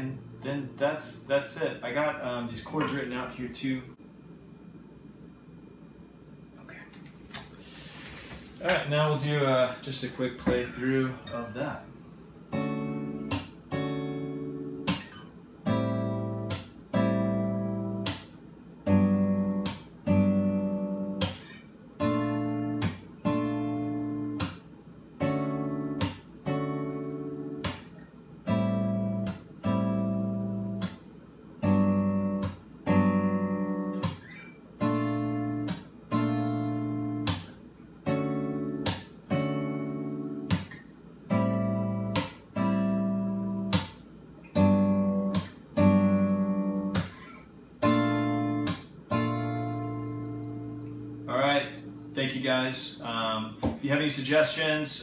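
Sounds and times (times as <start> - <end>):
fingerstyle acoustic guitar chords: 8.4 - 54.4.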